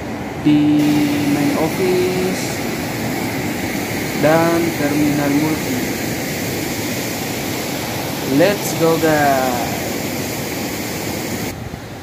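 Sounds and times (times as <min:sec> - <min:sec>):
river rushing over rocks: 0:00.1 - 0:11.7.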